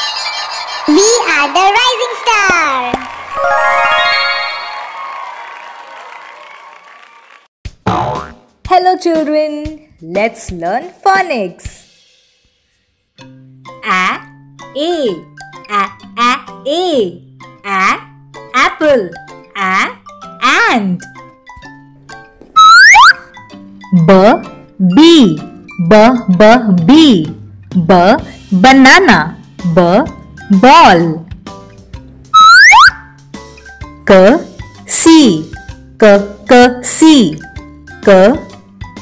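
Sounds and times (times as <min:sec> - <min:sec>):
soft children's music: 0:03.3 - 0:04.9, 0:11.6 - 0:39.0
cartoon sliding pitch effect: 0:03.4 - 0:04.8, 0:22.6 - 0:23.2, 0:32.4 - 0:33.0
jingle chord: 0:03.4 - 0:04.9
rising whistle sound effect: 0:22.6 - 0:23.2, 0:32.4 - 0:33.1.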